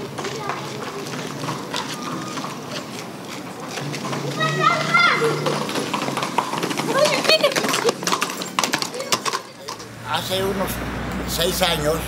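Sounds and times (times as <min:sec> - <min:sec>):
children shouting: 0:00.0 - 0:03.0, 0:03.8 - 0:10.3.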